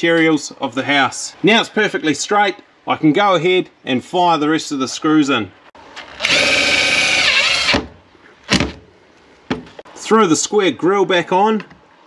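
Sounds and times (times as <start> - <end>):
impact driver driving screw: 6.2 - 7.9.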